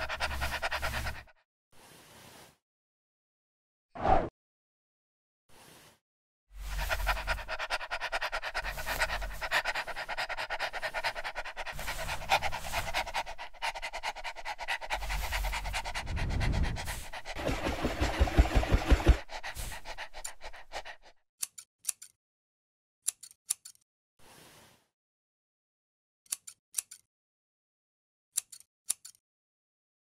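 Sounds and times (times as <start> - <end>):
dog panting: 0.0 - 1.3, 6.6 - 21.1.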